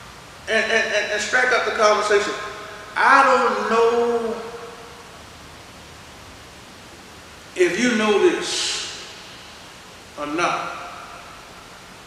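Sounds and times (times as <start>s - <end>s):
steady hiss: 0.0s - 12.0s
man preaching: 0.5s - 4.8s, 7.6s - 9.1s, 10.2s - 11.1s.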